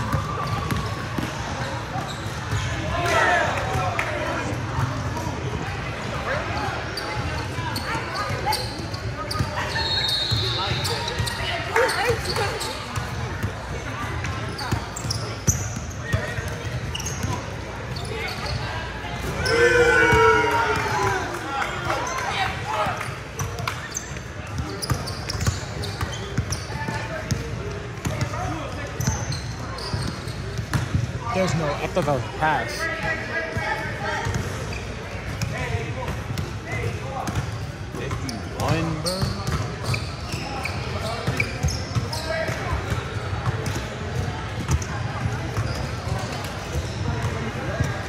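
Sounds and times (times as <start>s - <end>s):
voices echoing in a gym: 0.0s - 48.0s
loud shout: 19.4s - 22.2s.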